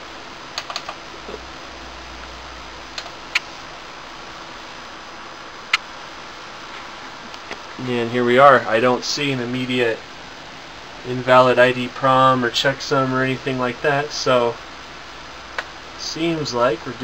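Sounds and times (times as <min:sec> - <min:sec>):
computer fans: 0:00.0 - 0:17.0
monitor buttons clicking: 0:00.6 - 0:01.0.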